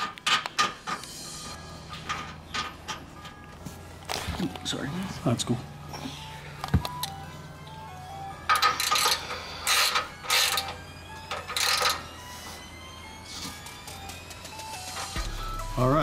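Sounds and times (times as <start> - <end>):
background music: 0.0 - 16.0
ratchet wrench rasping: 8.5 - 12.1.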